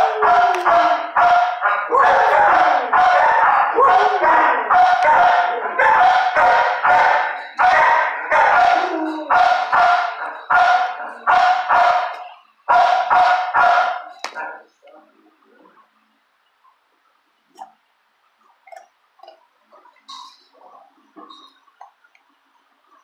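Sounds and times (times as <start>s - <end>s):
dog barking loudly: 0.0s - 14.6s.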